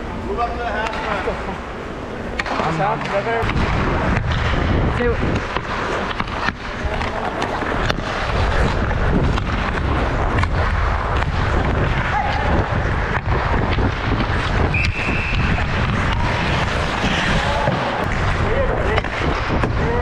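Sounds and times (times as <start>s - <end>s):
clicks of sticks and puck: 0.8s - 1.1s, 2.4s - 4.5s, 5.3s - 12.1s
wind rumble on microphone: 3.4s - 20.0s
skate blades scraping ice: 3.6s - 20.0s.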